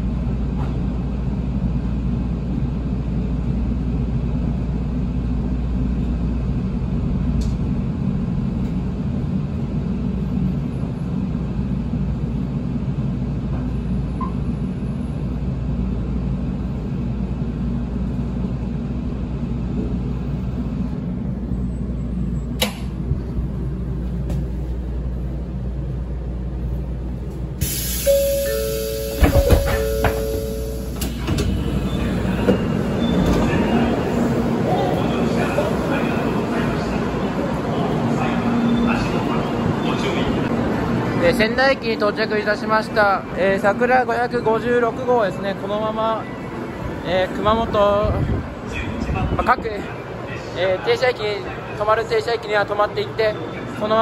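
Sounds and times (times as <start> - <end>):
train low rumble: 0.0 - 54.0
two-note door chime: 28.0 - 31.0.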